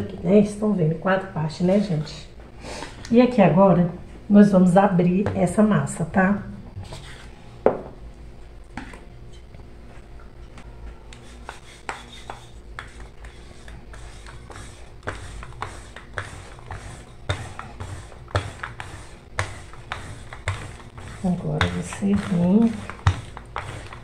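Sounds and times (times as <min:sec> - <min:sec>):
rolling pin knocking and rubbing: 0:11.3 - 0:24.0.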